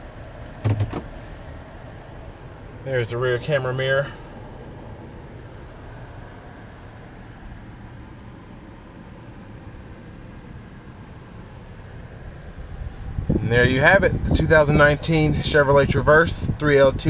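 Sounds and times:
car cabin hiss: 0:00.7 - 0:01.7.

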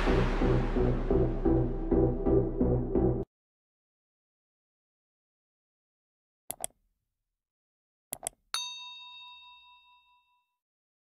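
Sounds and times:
bell ding: 0:08.6 - 0:10.6.

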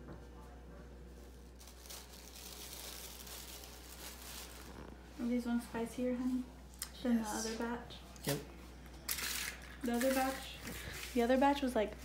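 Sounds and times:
pretzel sticks crinkling and crunching: 0:01.2 - 0:05.0, 0:09.1 - 0:11.6.

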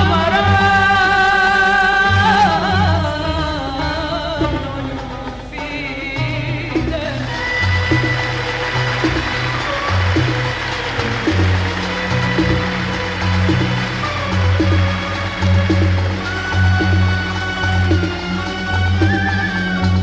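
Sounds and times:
moving bass line: 0:06.1 - 0:20.0
steady beat: 0:06.7 - 0:20.0
violins and cellos playing: 0:07.3 - 0:20.0.

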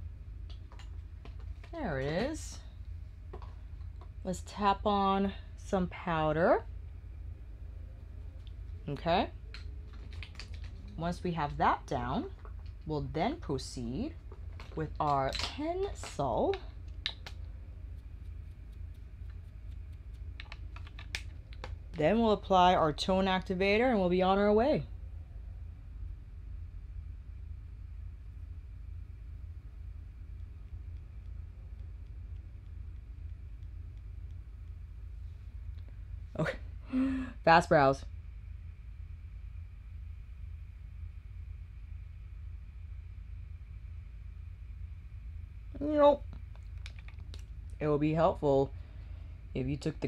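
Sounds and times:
faint high whine: 0:00.0 - 0:50.0
low steady hum: 0:00.0 - 0:50.0
makeup tools clicking and tapping: 0:18.7 - 0:21.8.

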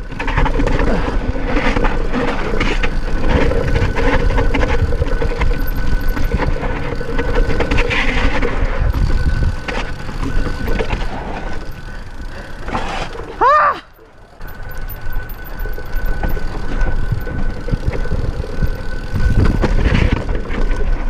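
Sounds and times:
wind buffeting microphone: 0:00.0 - 0:13.4, 0:14.4 - 0:21.0
mountain bike clatter and rattle: 0:00.0 - 0:21.0
tyres rolling over dirt: 0:00.0 - 0:21.0.

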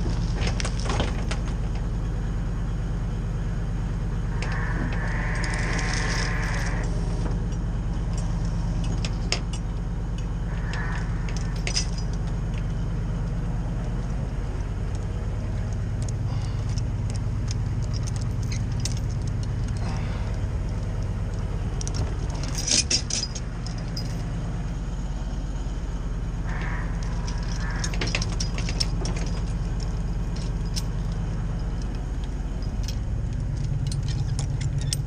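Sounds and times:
truck engine running: 0:00.0 - 0:35.0
chain and tongs clinking: 0:04.4 - 0:12.8, 0:16.0 - 0:24.4, 0:26.5 - 0:32.0, 0:32.6 - 0:35.0.

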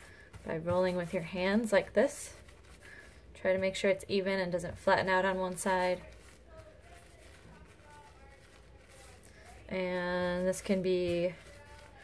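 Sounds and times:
hands rolling wet clay: 0:00.0 - 0:12.0.

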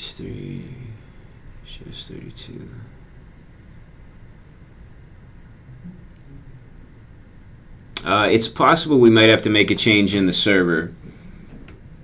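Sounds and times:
man speaking: 0:00.0 - 0:01.0, 0:01.6 - 0:03.0, 0:08.0 - 0:11.0
faint low rumble: 0:00.0 - 0:12.0.

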